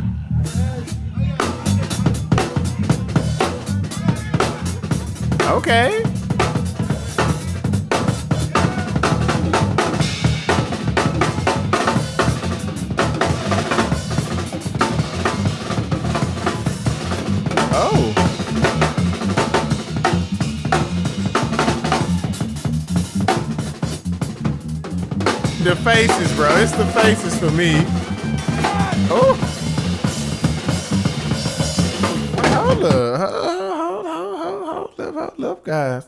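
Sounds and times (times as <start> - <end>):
electric bass line: 0.0 - 32.8
drum kit playing fills: 0.4 - 33.2.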